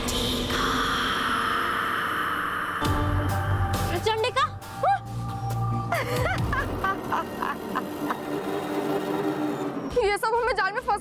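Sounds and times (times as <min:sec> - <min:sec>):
dramatic background music: 0:00.0 - 0:11.0
woman cackling laugh: 0:05.9 - 0:08.3.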